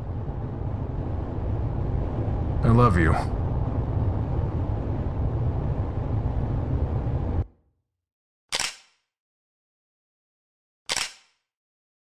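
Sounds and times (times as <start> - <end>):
car road and engine rumble: 0.0 - 7.4
sharp click-like burst: 10.9 - 11.4.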